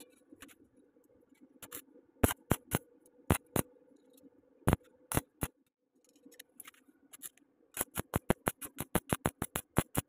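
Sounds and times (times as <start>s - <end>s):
welding arc crackling: 7.8s - 10.0s.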